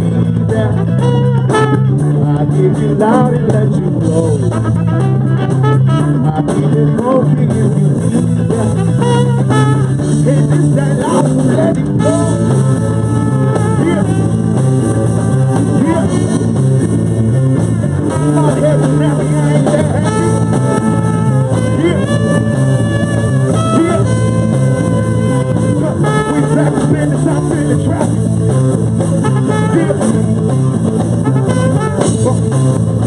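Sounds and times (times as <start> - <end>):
trumpet line: 0.0 - 2.3, 4.2 - 33.0
bass guitar: 0.0 - 33.0
drum kit: 0.0 - 33.0
electric guitar: 0.0 - 33.0.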